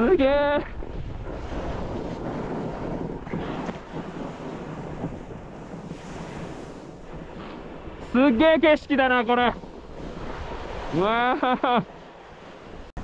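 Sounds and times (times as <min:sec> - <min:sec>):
snowboard carving over snow: 0:00.0 - 0:13.0
wind on microphone: 0:00.0 - 0:13.0.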